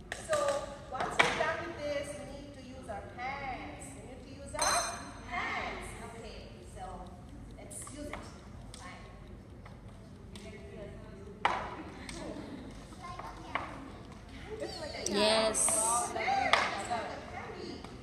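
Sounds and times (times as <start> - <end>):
faint indistinct talk: 14.8 - 16.2.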